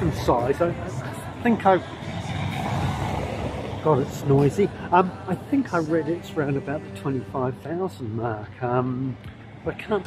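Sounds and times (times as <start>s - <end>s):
vehicle driving past: 0.7s - 5.8s.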